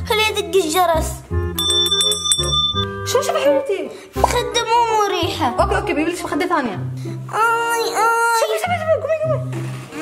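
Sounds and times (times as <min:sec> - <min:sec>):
background music: 0:00.0 - 0:10.0
bell rung rapidly: 0:01.6 - 0:02.9.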